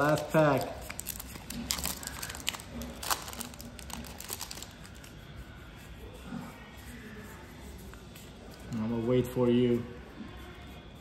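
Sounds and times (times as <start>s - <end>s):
foil wrapper tearing and crinkling: 0.0s - 5.0s
cards rustling: 0.0s - 5.1s.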